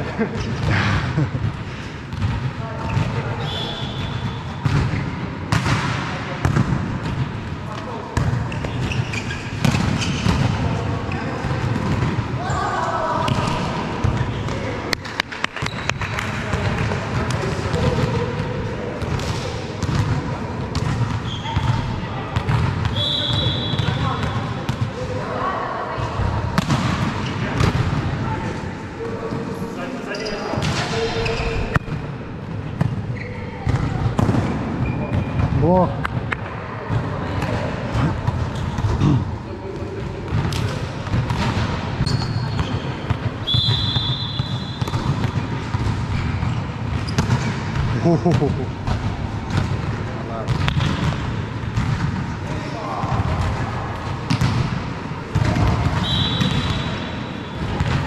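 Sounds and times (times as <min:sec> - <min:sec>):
volleyball hits: 0:00.6 - 0:10.8, 0:13.2 - 0:18.4, 0:26.2 - 0:28.1, 0:33.7 - 0:39.2, 0:40.2 - 0:52.4, 0:53.0 - 0:58.0
sneaker squeaks: 0:02.1 - 0:05.2, 0:08.2 - 0:11.5, 0:15.5 - 0:16.3, 0:20.8 - 0:24.5, 0:29.5 - 0:32.1, 0:32.7 - 0:34.2, 0:34.8 - 0:35.6, 0:42.0 - 0:48.4, 0:55.4 - 0:58.0.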